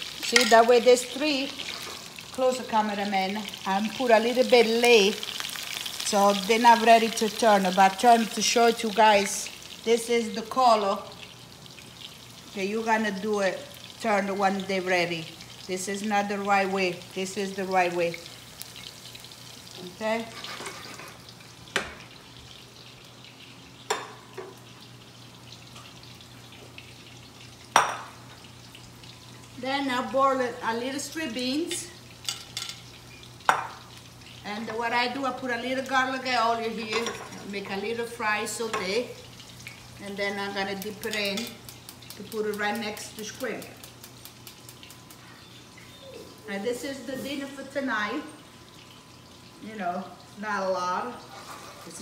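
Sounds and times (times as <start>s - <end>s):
food sizzling in oil: 0.0s - 52.0s.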